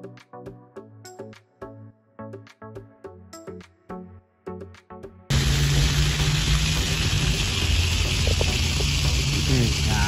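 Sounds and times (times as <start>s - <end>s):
background music: 0.0s - 10.0s
fountain jets hissing: 5.3s - 10.0s.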